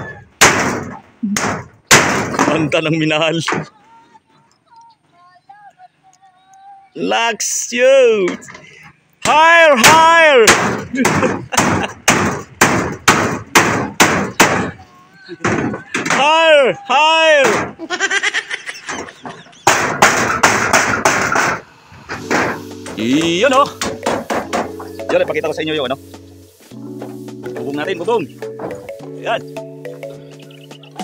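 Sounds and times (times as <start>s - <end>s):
breathy laughter: 10.9s - 12.1s, 17.8s - 19.7s
hammer blows: 18.9s - 29.2s.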